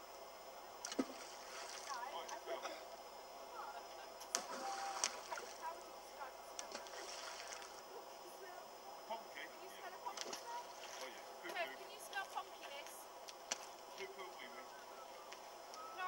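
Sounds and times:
stones splashing into water: 0:04.3 - 0:05.6.

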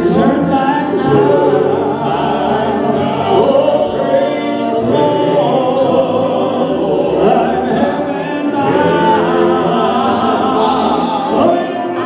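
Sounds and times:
male quartet singing in harmony: 0:00.0 - 0:12.0.

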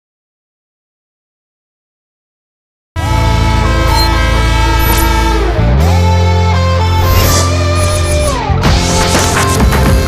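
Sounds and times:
rising pitch glide: 0:03.0 - 0:09.5.

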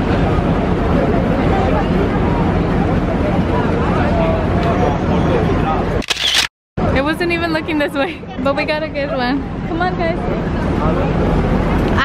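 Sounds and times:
street crowd chatter: 0:00.0 - 0:12.0
camera shutter click: 0:06.0 - 0:06.5.

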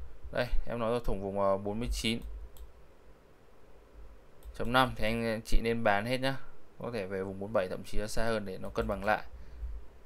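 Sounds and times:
computer mouse clicks: 0:02.2 - 0:02.8, 0:04.4 - 0:04.7.

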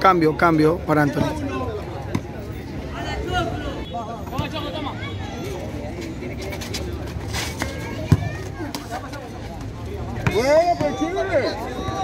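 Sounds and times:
crowd chattering: 0:00.0 - 0:12.0
voices shouting: 0:10.2 - 0:12.0.

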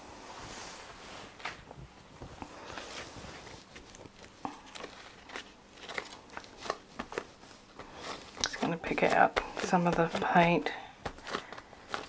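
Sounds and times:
paper and leaves rustling: 0:02.5 - 0:12.0.

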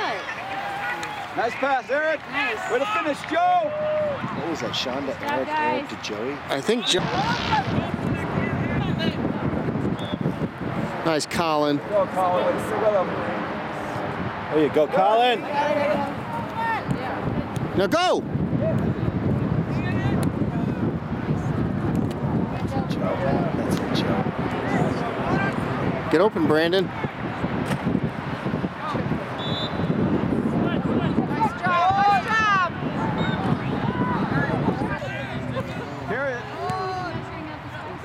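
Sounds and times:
distant shouting players: 0:00.0 - 0:09.3, 0:28.4 - 0:38.0
open-air background murmur: 0:00.0 - 0:38.0
distant shout: 0:02.2 - 0:04.3
wind rumbling on microphone: 0:03.0 - 0:38.0.

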